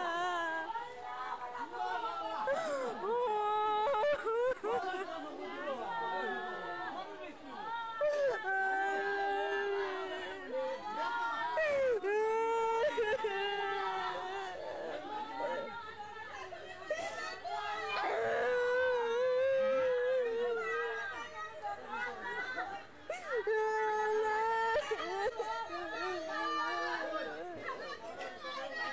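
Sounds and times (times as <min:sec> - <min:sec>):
people talking and calling: 0:00.0 - 0:28.9.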